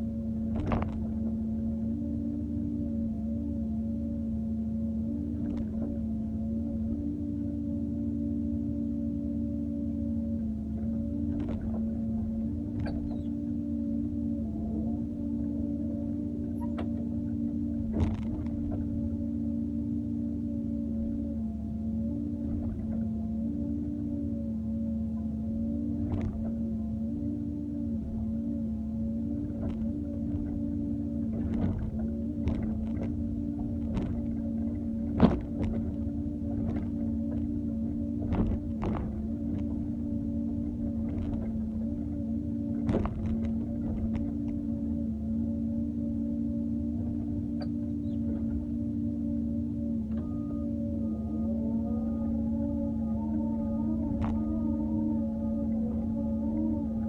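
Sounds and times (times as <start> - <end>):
excavator engine humming whine: 0.0 - 57.0.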